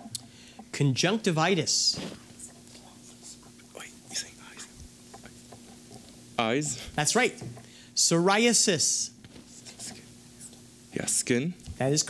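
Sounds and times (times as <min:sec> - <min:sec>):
people whispering: 0:01.9 - 0:05.7, 0:09.4 - 0:10.6.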